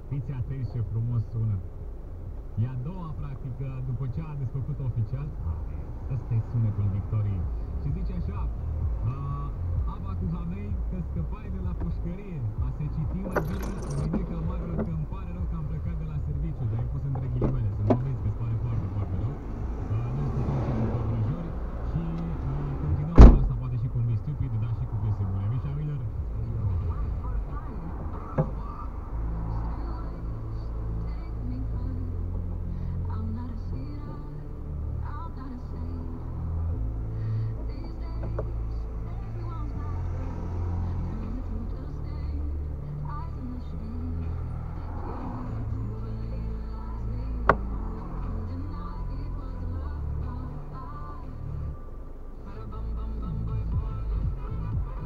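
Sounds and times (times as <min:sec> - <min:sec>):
wavering low voice: 0:03.2 - 0:32.2
music with low bass line: 0:04.2 - 0:29.4, 0:30.4 - 0:55.0.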